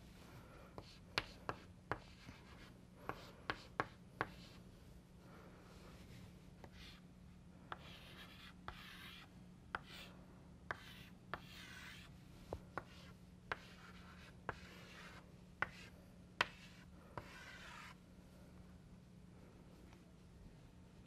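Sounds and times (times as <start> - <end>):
chalk tapping on blackboard: 0.8 - 4.5, 7.7 - 10.0, 10.7 - 12.1, 12.8 - 18.0
chalk scratching on blackboard: 0.8 - 4.6, 6.6 - 7.0, 7.7 - 10.1, 10.7 - 12.1, 12.8 - 18.0.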